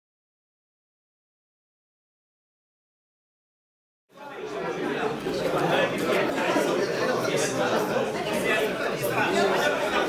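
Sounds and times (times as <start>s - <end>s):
babble of overlapping voices: 4.1s - 10.0s.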